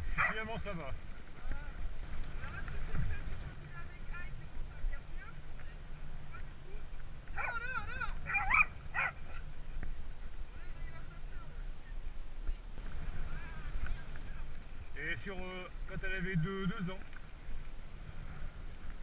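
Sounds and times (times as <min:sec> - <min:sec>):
bike tyres on gravel: 0:00.0 - 0:11.9
wind rumble: 0:00.0 - 0:19.0.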